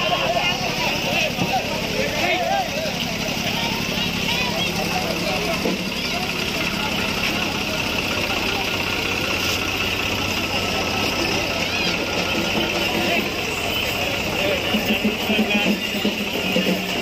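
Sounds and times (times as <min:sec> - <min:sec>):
crowd chatter: 0:00.0 - 0:17.0
tractor diesel engine idling: 0:00.0 - 0:17.0.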